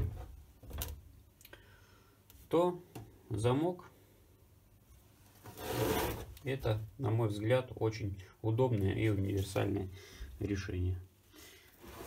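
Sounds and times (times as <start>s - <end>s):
silicone mould scraping across workbench: 5.4s - 6.3s.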